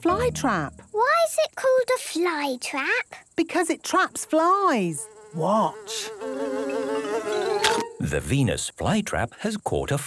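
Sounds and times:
cartoon fly buzzing: 4.1s - 8.0s.

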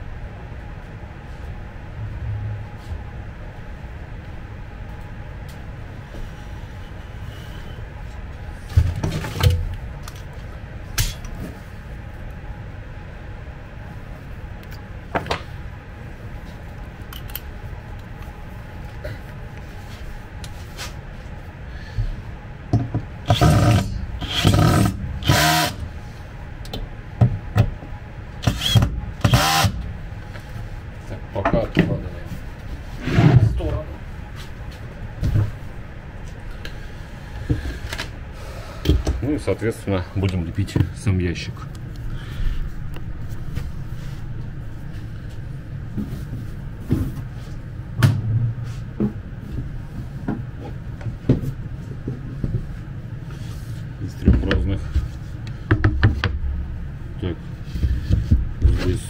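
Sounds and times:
cordless drill bursts: 23.3s - 25.8s, 28.5s - 29.8s.

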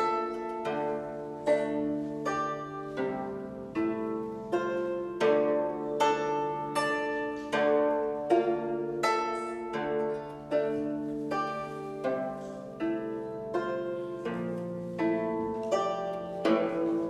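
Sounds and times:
plucked zither chords: 0.0s - 17.0s.

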